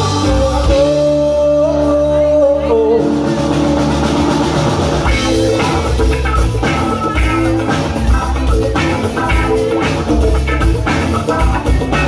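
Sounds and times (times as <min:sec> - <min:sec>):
bass: 0:00.0 - 0:12.0
held guitar notes: 0:00.0 - 0:12.0
keyboard notes: 0:00.0 - 0:12.0.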